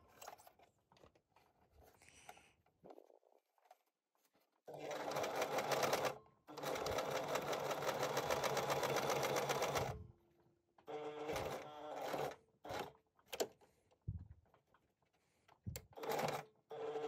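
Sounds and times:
sewing machine stitching: 4.7s - 10.0s, 10.9s - 13.0s, 15.9s - 17.0s.

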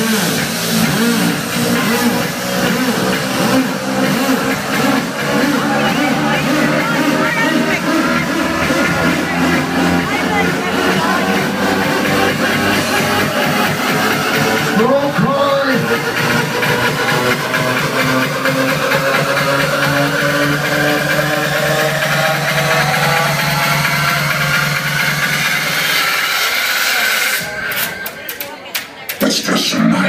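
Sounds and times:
electronic house music: 0.0s - 30.0s.

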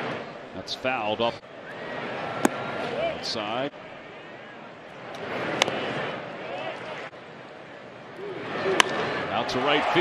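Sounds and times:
crowd murmur: 1.5s - 9.6s.

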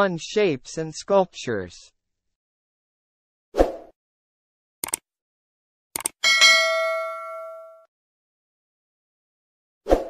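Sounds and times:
double mouse click: 4.8s - 5.0s, 6.0s - 6.2s
notification bell ding: 6.2s - 7.9s.

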